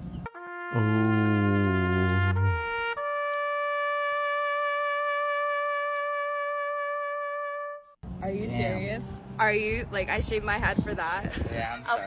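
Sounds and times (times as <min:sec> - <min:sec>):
comedic brass fail sound: 0:00.3 - 0:07.9.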